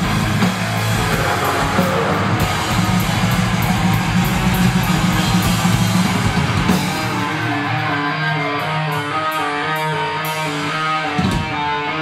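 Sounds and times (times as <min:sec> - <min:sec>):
live band playing heavy music: 0:00.0 - 0:12.0.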